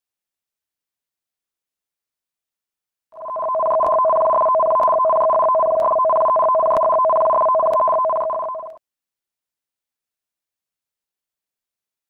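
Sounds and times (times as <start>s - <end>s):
two-tone electronic alert: 3.2s - 8.8s.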